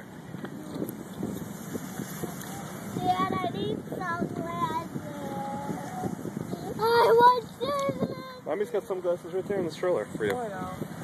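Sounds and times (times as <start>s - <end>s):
outdoor background noise: 0.0s - 11.0s
young child talking: 2.2s - 8.5s.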